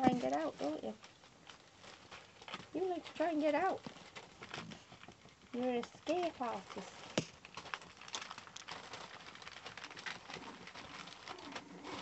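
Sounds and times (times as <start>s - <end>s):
newspaper rustling and crackling: 0.0s - 12.0s
puppies scrambling and playing: 0.0s - 12.0s.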